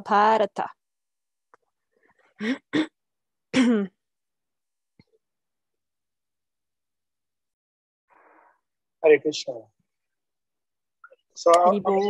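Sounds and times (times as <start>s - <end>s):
woman clearing her throat: 2.4s - 4.0s.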